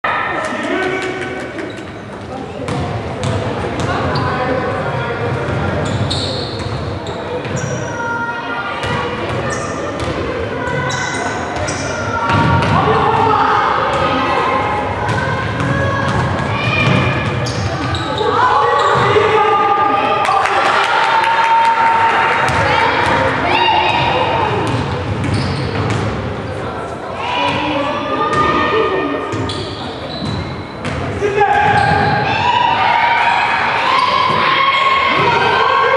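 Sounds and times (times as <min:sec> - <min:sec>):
players and spectators calling out: 0:00.0 - 0:35.9
basketball bouncing on court: 0:02.6 - 0:04.2, 0:12.3 - 0:12.8, 0:15.0 - 0:17.9, 0:23.9 - 0:26.2, 0:30.2 - 0:32.2.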